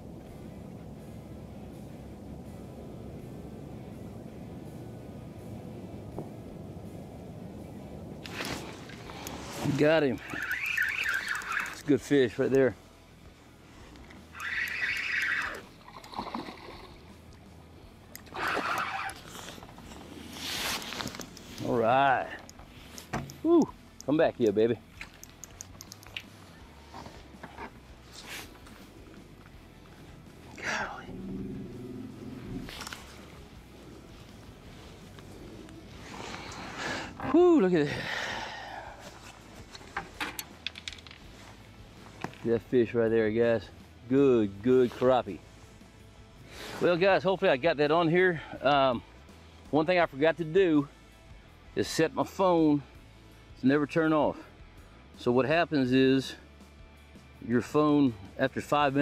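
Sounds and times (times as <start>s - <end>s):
handling clicks and taps: 22.4s - 26.3s, 39.7s - 41.2s
soft breathy hiss: 28.0s - 39.8s, 44.9s - 47.0s.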